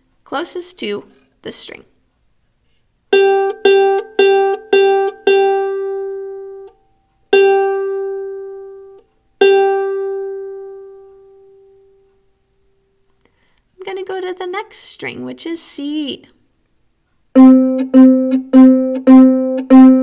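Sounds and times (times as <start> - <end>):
ukulele string plucked: 3.1 - 11.2, 17.4 - 20.0.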